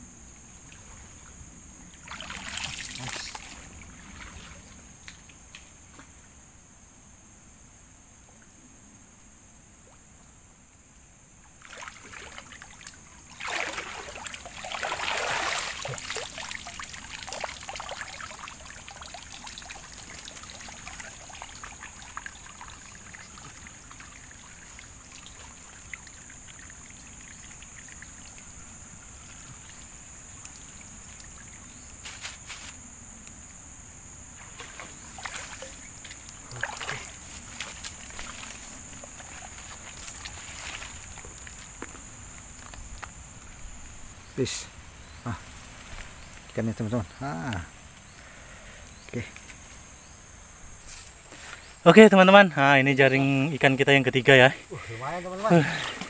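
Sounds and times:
water sloshing and splashing: 0.7s - 5.0s, 11.6s - 32.8s, 34.3s - 44.0s, 54.6s - 56.0s.

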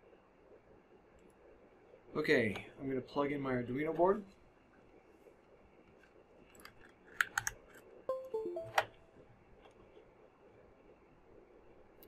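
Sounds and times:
device-connect chime: 8.1s - 9.2s.

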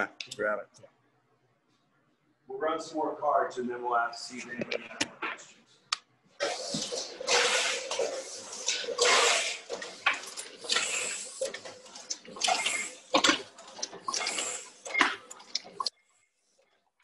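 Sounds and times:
printing press clatter: 6.8s - 15.8s.

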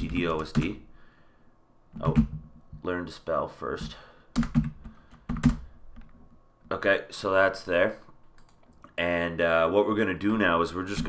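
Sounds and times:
computer keyboard keystrokes: 4.4s - 6.2s, 8.4s - 8.8s.

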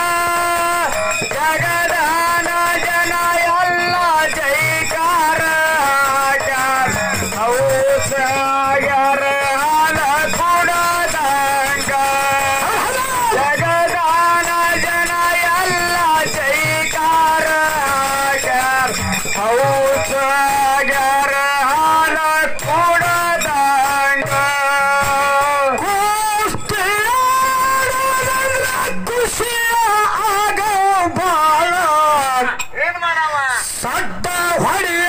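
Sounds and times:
man singing into microphone: 0.0s - 32.9s, 33.6s - 35.0s.

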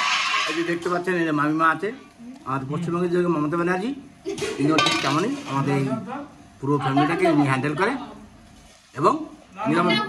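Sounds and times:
metal utensil scraping steel bowl: 0.0s - 0.9s.

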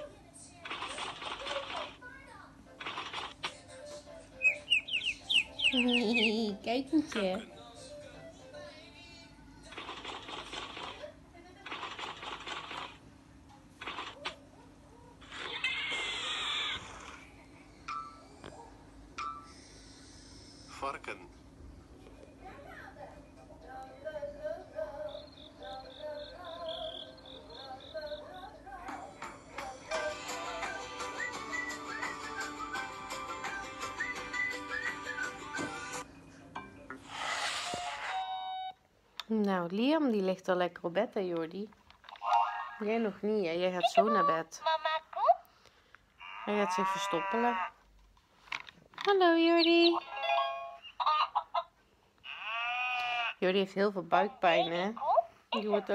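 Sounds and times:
cartoon soundtrack from phone speaker: 4.4s - 6.5s, 46.2s - 47.8s, 49.5s - 51.7s
wavering bleating call: 46.2s - 47.8s, 52.2s - 53.4s.

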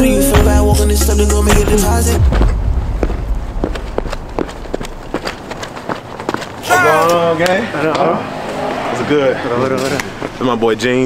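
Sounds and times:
footsteps of boots on asphalt: 1.5s - 7.0s.

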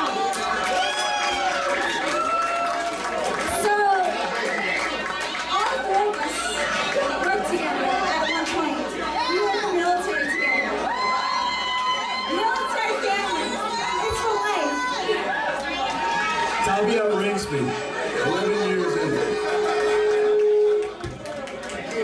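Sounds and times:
crowd talking and calling out: 0.0s - 22.0s.

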